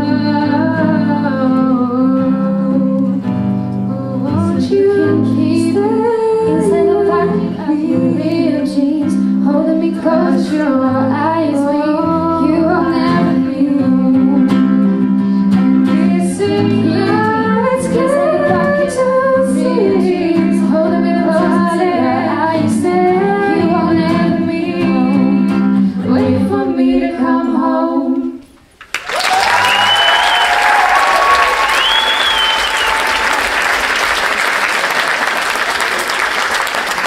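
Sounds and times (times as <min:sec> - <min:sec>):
woman singing: 0:00.0 - 0:28.4.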